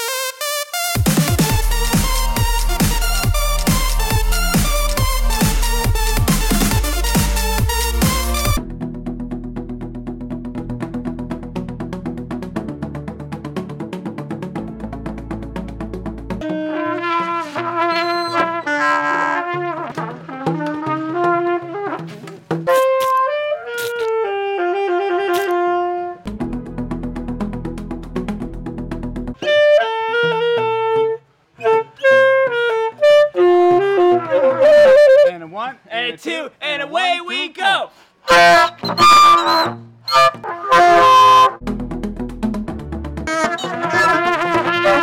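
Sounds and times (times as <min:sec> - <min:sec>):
trumpet melody: 0:00.0 - 0:08.6, 0:16.4 - 0:26.3, 0:29.4 - 0:35.3, 0:38.2 - 0:41.6, 0:43.3 - 0:45.0
horn-like wind instrument notes: 0:16.4 - 0:26.3, 0:29.4 - 0:35.7, 0:38.2 - 0:41.6, 0:43.3 - 0:45.0.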